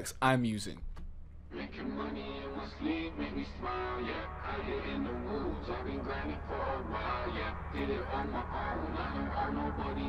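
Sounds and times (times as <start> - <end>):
distorted robotic sung vocals: 1.6 - 10.0.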